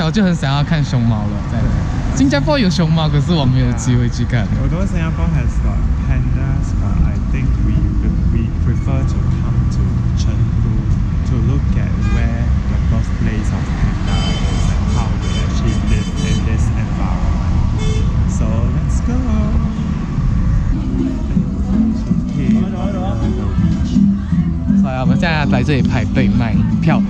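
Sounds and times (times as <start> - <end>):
faint voices: 0.0 - 27.0
low rumble of vehicles: 0.0 - 27.0
car horn: 11.9 - 12.6, 14.0 - 16.8, 17.7 - 18.3.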